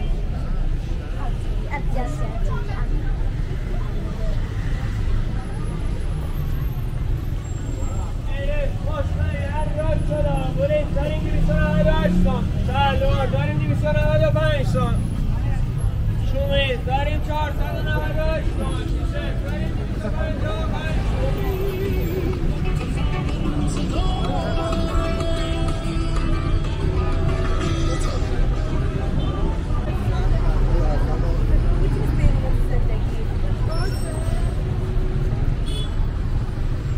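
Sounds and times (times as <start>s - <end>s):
pedestrians chattering: 0.0s - 36.9s
traffic rumble: 0.0s - 36.9s.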